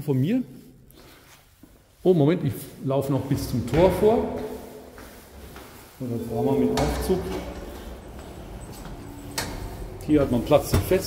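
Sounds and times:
sliding doors opening with hum: 5.3s - 11.0s.

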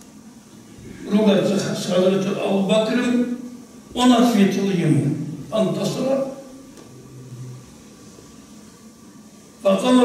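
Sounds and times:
steady hiss: 0.0s - 10.0s
low hum: 6.4s - 9.4s.

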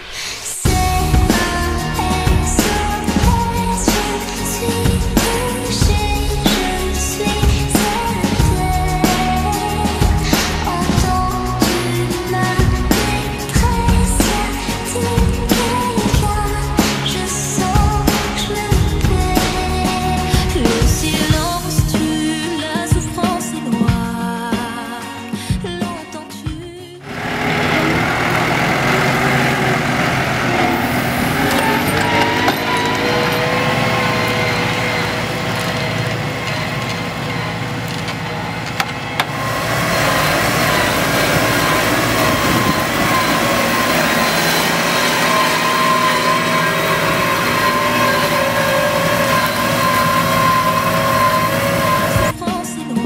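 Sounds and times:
steady whine: 0.0s - 21.8s, 27.0s - 52.4s
tractor diesel engine under load: 0.0s - 21.9s, 27.0s - 52.4s.

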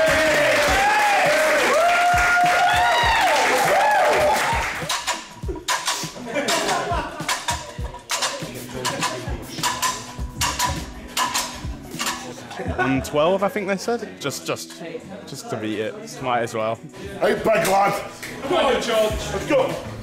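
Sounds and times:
background music with steady beat: 0.0s - 20.0s.

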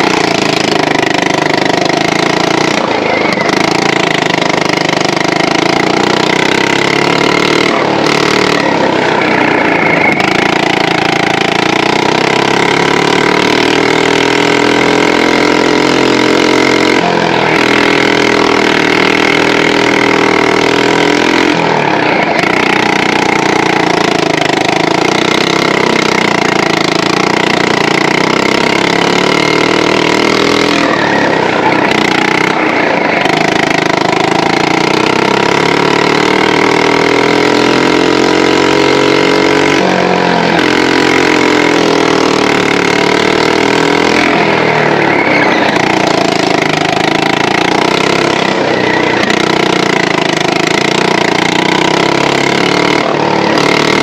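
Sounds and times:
go-kart engine running hard: 0.0s - 54.0s.

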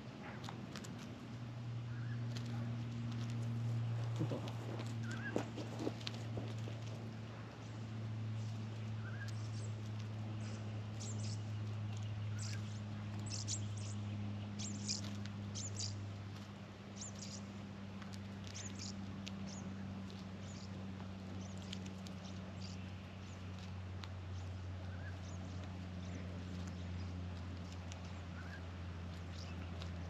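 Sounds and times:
low hum: 0.0s - 30.0s
birds rustling in straw: 0.3s - 30.0s.

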